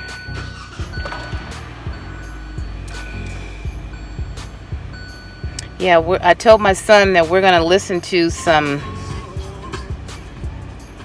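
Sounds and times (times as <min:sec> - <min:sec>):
music from car radio: 0:00.0 - 0:11.0.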